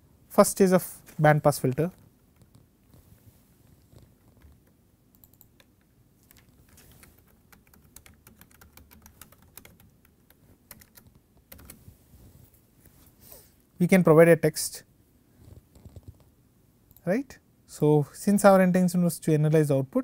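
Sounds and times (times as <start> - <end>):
typing on computer keyboard: 4.2 - 11.8.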